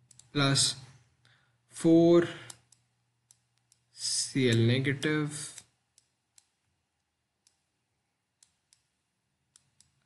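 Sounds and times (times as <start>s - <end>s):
stylus clicking on drawing tablet: 0.0s - 0.4s, 2.4s - 3.9s, 4.5s - 10.0s.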